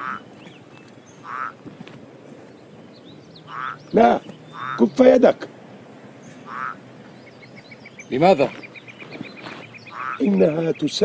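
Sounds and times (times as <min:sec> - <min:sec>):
frog croaking: 0:00.0 - 0:00.4, 0:01.2 - 0:01.6, 0:03.3 - 0:05.2, 0:06.3 - 0:09.0, 0:09.7 - 0:10.6.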